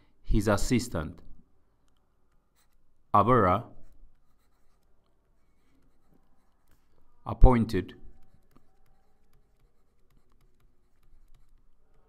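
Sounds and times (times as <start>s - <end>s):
stylus writing on tablet: 1.8s - 12.0s.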